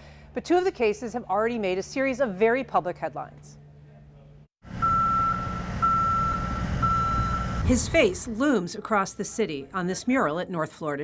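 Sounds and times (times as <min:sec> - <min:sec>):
motion alarm beeping: 0:04.8 - 0:09.5
low engine rumble: 0:05.5 - 0:08.6.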